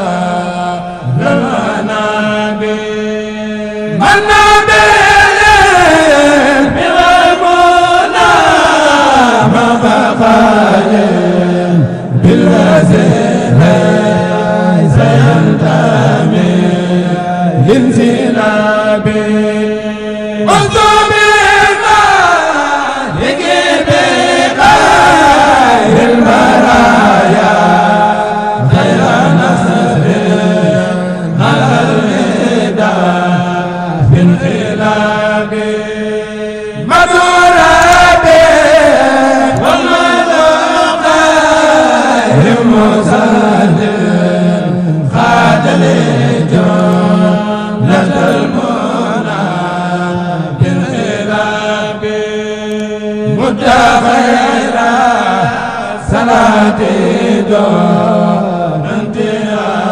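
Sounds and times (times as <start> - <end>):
man chanting a devotional song: 0.0 - 59.9.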